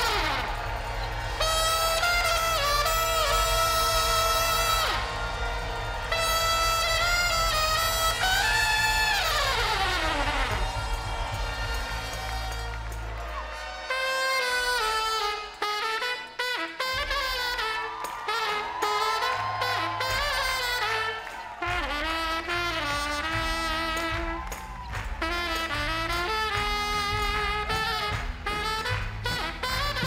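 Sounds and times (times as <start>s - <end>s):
brass playing held notes: 0.0s - 30.0s.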